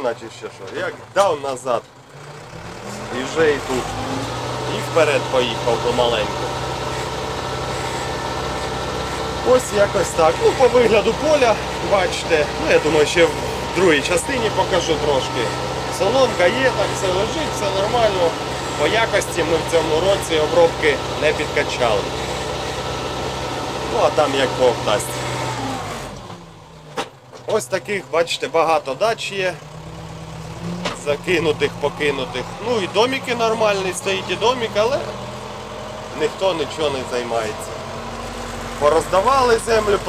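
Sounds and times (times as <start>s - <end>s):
tractor diesel engine running: 0.0s - 40.0s.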